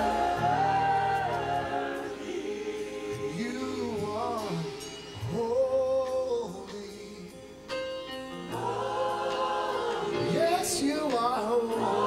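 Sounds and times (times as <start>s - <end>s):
congregation singing: 0.0s - 7.3s, 8.4s - 12.0s
man singing into a microphone: 3.3s - 7.6s, 10.2s - 11.8s.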